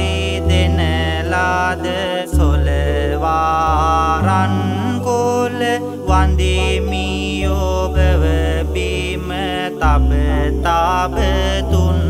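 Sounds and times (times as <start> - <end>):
low keyboard bass notes: 0.0 - 12.0
wavering chant-like melody: 0.0 - 12.0.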